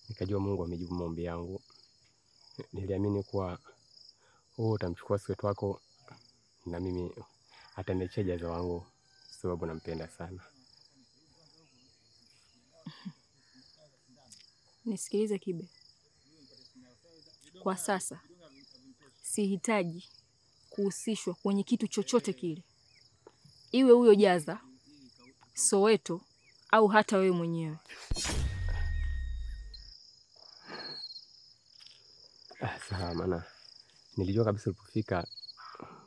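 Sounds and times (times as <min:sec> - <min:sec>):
insect chorus trilling: 0:00.0 - 0:36.0
person speaking: 0:20.8 - 0:22.6, 0:32.5 - 0:33.5.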